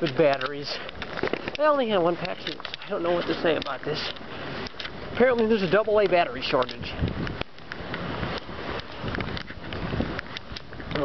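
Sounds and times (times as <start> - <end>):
light clicks: 0.0 - 5.8, 6.5 - 11.0
wind buffeting microphone: 0.0 - 11.0.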